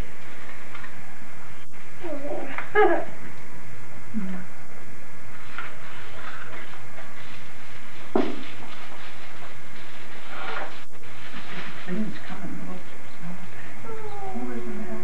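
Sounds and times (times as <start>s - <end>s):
steady low hum: 0.0s - 15.0s
tissue paper rustling: 5.3s - 12.8s.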